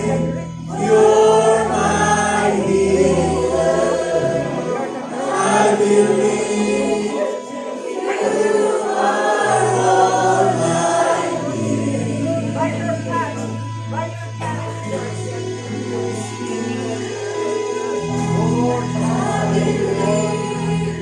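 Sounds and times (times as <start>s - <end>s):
congregation singing: 0.0s - 21.0s
keyboard: 0.0s - 21.0s.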